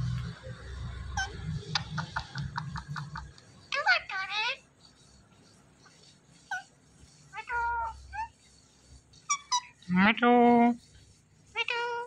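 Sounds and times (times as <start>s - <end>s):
parakeet high chirps: 1.2s - 2.1s, 3.7s - 4.7s, 6.5s - 8.4s, 9.2s - 9.9s, 11.5s - 12.0s.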